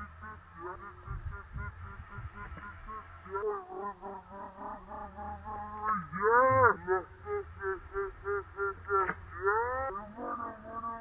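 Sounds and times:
rising and falling vocal call: 0.0 - 11.0.

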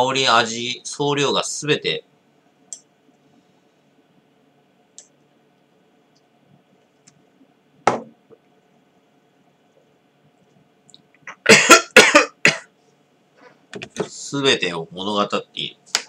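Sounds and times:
man talking: 0.0 - 2.1, 13.9 - 16.0
man coughing: 11.3 - 12.7.

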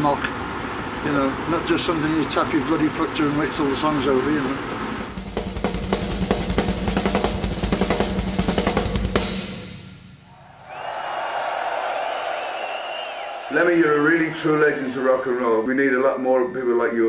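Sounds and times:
rock drum kit played fast: 5.1 - 9.9.

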